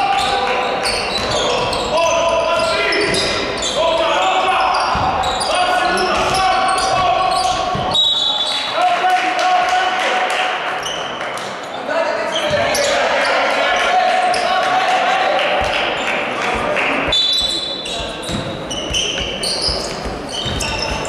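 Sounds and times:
players' voices: 0.0s - 21.0s
referee's whistle: 5.9s - 8.7s, 17.1s - 18.0s
basketball bouncing on wooden floor: 6.0s - 8.0s, 16.5s - 21.0s.

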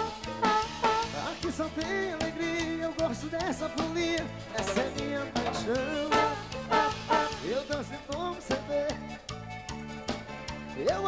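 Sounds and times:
accordion melody: 0.0s - 10.9s
bass: 0.0s - 11.0s
drum kit dance beat: 0.0s - 11.0s.

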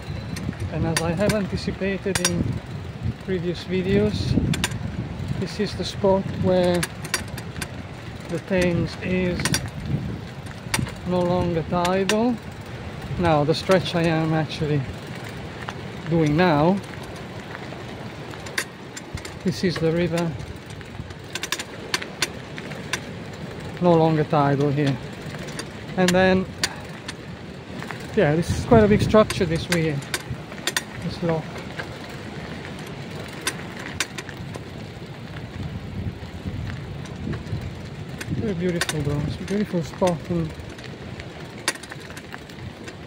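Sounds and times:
low outdoor rumble: 0.0s - 43.0s.

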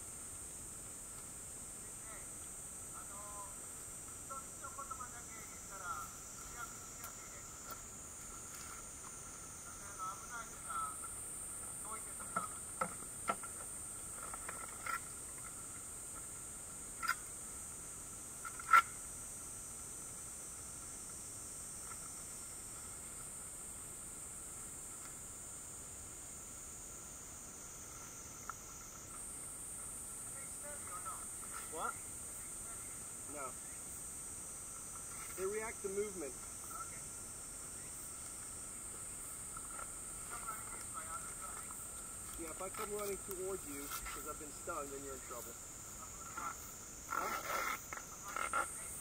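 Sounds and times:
insect drone: 0.0s - 49.0s
thin constant tone: 0.0s - 49.0s.

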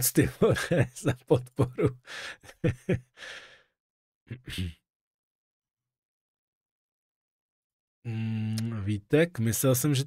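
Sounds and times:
man sighing: 2.0s - 2.5s, 3.2s - 3.6s, 8.1s - 8.7s.

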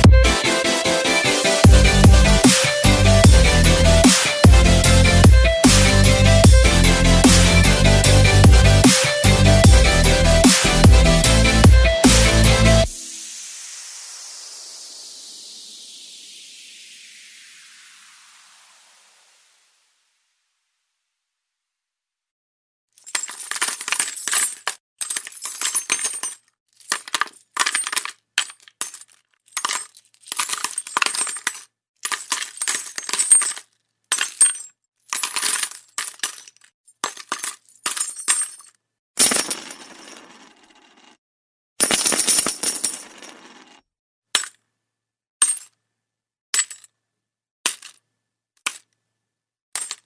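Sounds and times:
metallic jingling and clinking: 23.0s - 39.9s.

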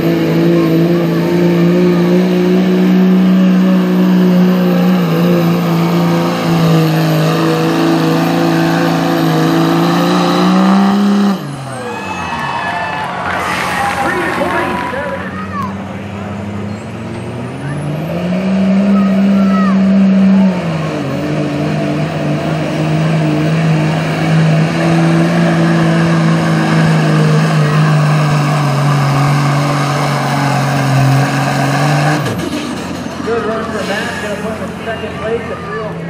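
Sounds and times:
diesel truck engine revving: 0.0s - 36.0s.

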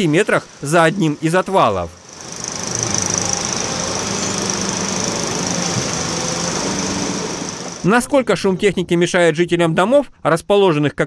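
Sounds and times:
steady high hiss: 0.0s - 8.0s
excavator diesel engine humming: 0.0s - 8.1s.

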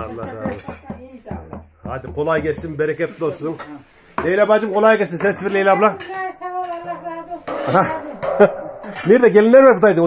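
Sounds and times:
woman speaking: 0.5s - 1.6s, 6.0s - 8.2s.

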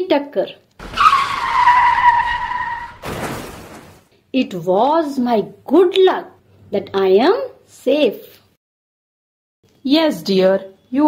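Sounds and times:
car tyres screeching: 0.8s - 4.0s.

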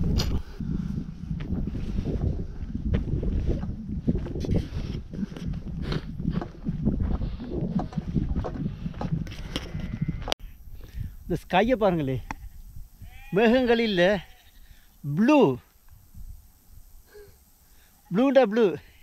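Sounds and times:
footsteps on dirt path: 0.0s - 12.8s
wind rumbling on microphone: 0.0s - 14.8s, 15.8s - 17.5s.

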